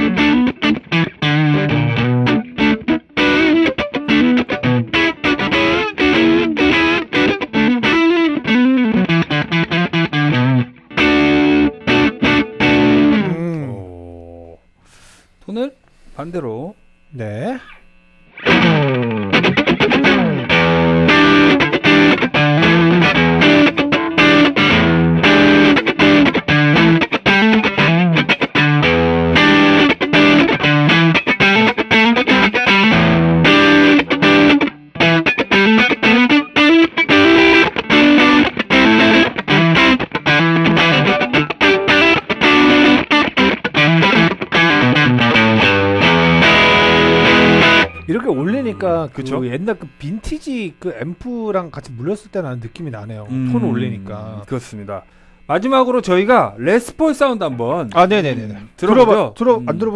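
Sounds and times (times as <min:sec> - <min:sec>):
overdriven electric guitar riffs: 0:00.0 - 0:56.6.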